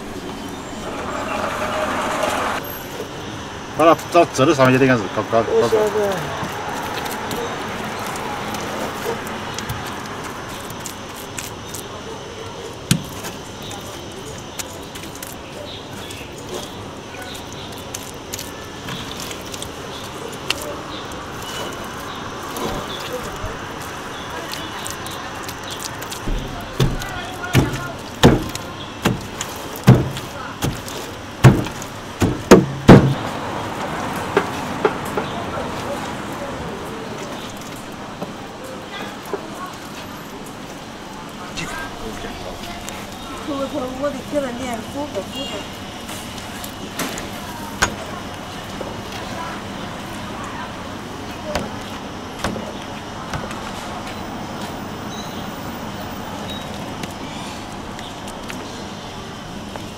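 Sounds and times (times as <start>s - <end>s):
street traffic hum: 0.0s - 59.9s
heavy dull thuds: 31.4s - 33.2s.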